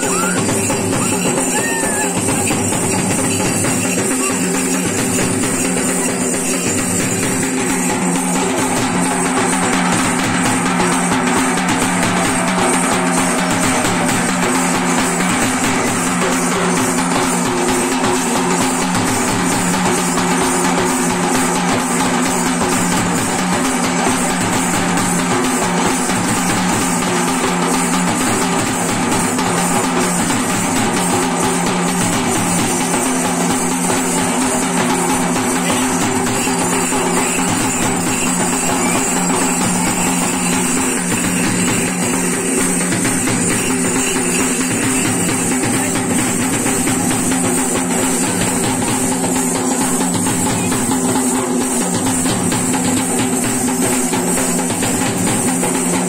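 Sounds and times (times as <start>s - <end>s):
drumming on steel drums: 0.0s - 56.0s.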